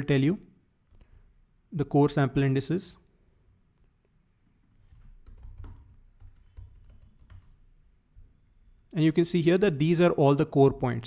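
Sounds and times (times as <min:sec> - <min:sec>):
computer keyboard typing: 0:04.9 - 0:07.6.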